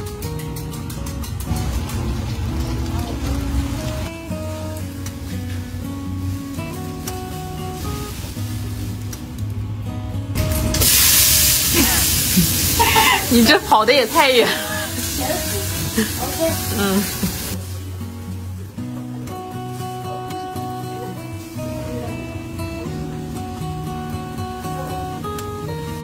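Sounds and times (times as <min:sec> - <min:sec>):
melodic background music: 0:00.0 - 0:26.0
tomatoes sizzling in hot oil: 0:01.5 - 0:09.4, 0:10.4 - 0:18.2.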